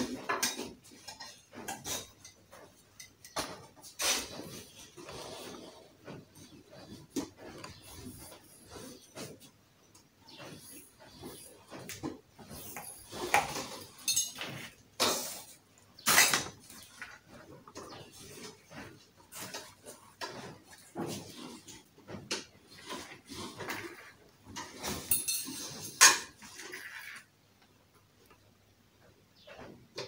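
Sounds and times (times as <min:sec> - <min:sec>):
steel pipe frame clinking: 0:25.0 - 0:26.0.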